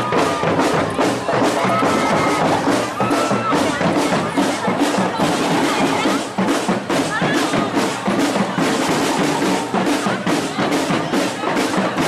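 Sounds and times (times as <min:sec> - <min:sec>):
bass and snare drums beating: 0:00.0 - 0:12.0
marching band playing: 0:00.0 - 0:12.0.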